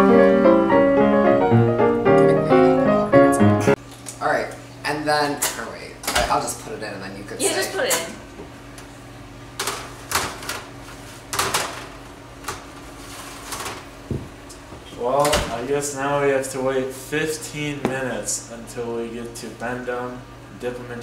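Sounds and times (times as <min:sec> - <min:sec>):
oven door thump: 0:15.2 - 0:15.7.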